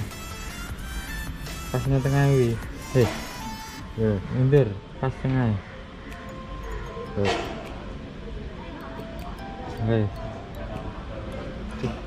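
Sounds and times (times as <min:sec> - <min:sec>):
shop background noise: 0:00.0 - 0:12.0.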